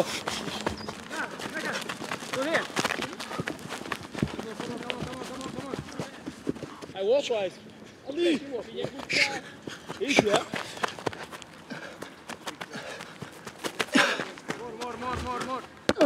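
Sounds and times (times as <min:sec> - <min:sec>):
running footsteps: 0:00.0 - 0:07.0, 0:08.3 - 0:16.0
men calling out and laughing: 0:04.2 - 0:16.0.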